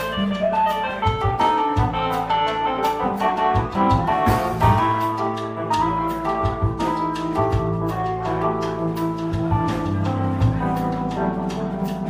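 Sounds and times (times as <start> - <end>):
live blues band playing: 0.0 - 12.0.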